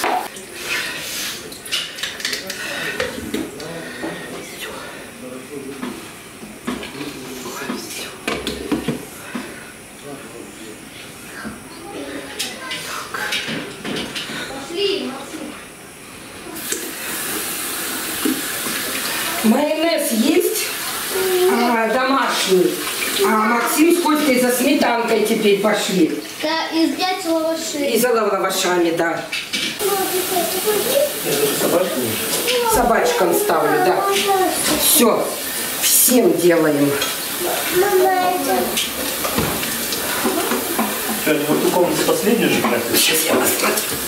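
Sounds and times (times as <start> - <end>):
gas stove hiss: 0.0 - 28.8, 29.8 - 44.0
tap water running into a sink: 16.6 - 25.5, 29.8 - 44.0.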